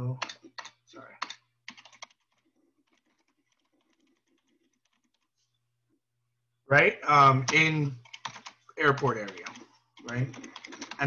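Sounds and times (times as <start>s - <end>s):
keyboard typing: 0.0s - 5.3s, 7.3s - 11.0s
person speaking: 6.6s - 11.0s.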